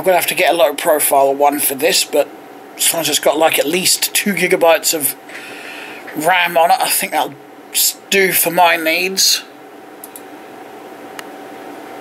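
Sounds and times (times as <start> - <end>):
computer fans hissing: 0.0 - 12.0.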